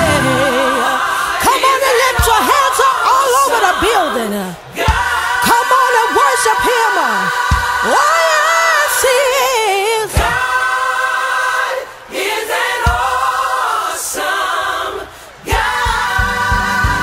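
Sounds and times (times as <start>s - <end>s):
low steady beat: 0.0s - 0.6s
women singing in harmony: 0.0s - 17.0s.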